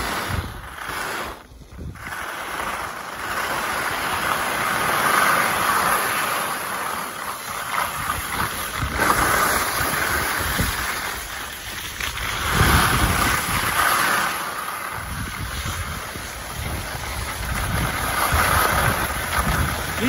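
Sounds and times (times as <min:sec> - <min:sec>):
wind buffeting microphone: 0:00.0 - 0:04.7, 0:07.8 - 0:13.8, 0:14.8 - 0:20.0
skis scraping over packed snow: 0:00.0 - 0:20.0.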